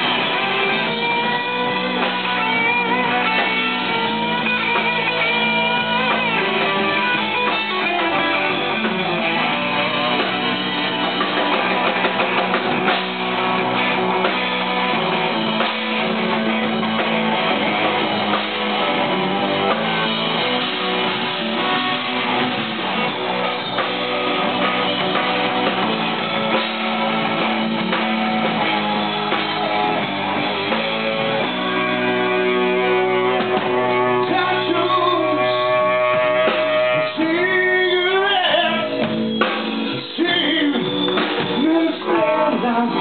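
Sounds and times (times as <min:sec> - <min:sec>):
bass guitar: 0:00.0 - 0:43.0
drums: 0:00.0 - 0:43.0
electric guitars with bending notes: 0:00.0 - 0:43.0.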